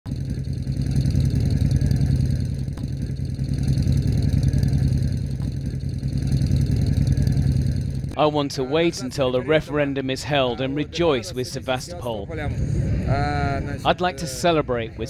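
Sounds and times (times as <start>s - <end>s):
motorcycle engines riding slowly: 0.1s - 15.0s.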